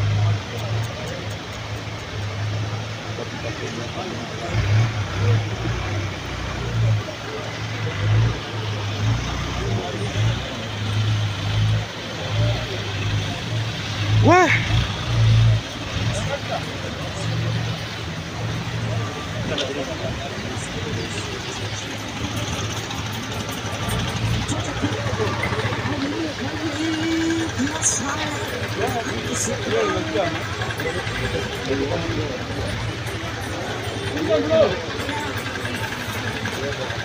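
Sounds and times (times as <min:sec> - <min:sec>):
indistinct voices: 0:00.0 - 0:37.0
traffic driving through water: 0:00.0 - 0:37.0
person shouting: 0:14.2 - 0:14.7.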